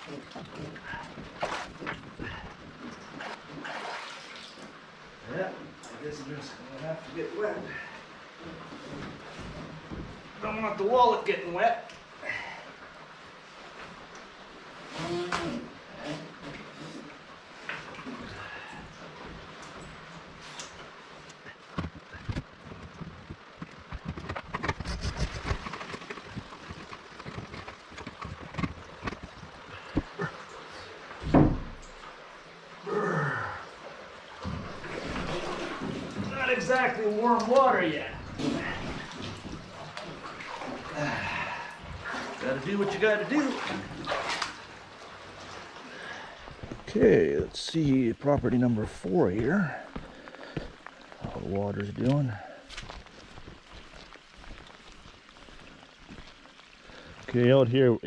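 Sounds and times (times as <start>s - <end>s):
splashing of wading through water: 0.0s - 5.2s, 7.0s - 57.6s
rain falling: 0.0s - 58.0s
man grunting and groaning: 32.8s - 33.6s.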